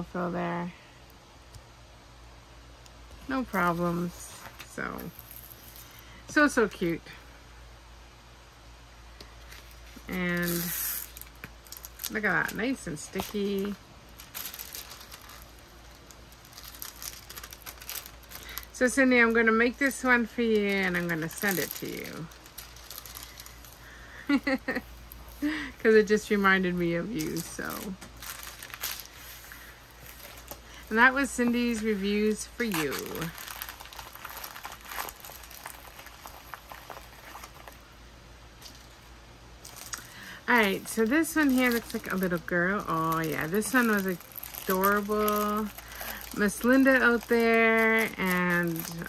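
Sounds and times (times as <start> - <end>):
plastic film crinkling: 3.2 - 7.0, 9.2 - 49.0.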